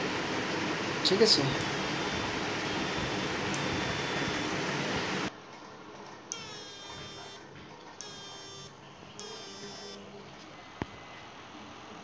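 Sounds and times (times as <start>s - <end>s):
high-pitched inverter whine: 0.0s - 5.3s, 6.3s - 12.0s.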